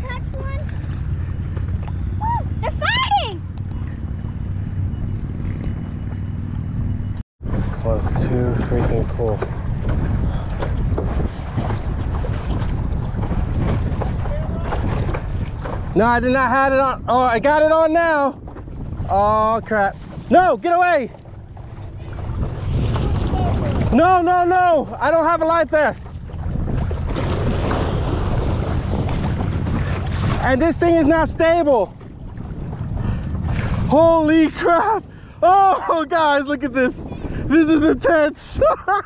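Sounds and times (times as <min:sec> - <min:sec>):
water sloshing: 0:00.0 - 0:37.5
wind buffeting microphone: 0:00.0 - 0:39.0.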